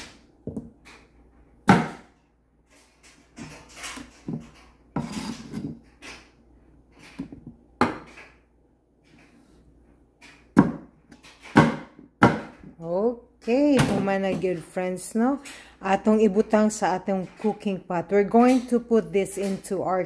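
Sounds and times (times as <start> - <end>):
knife chopping on wooden board: 1.6 - 2.1, 7.2 - 8.2, 10.5 - 12.6.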